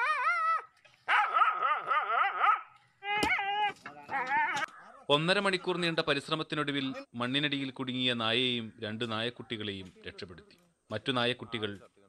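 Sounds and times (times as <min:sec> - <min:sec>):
puppy crying: 0:00.0 - 0:04.7.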